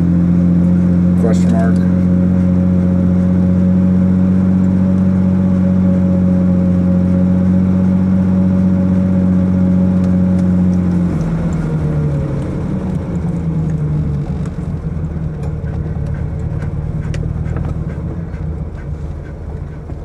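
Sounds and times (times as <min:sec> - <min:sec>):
car engine droning: 0:00.0 - 0:20.0.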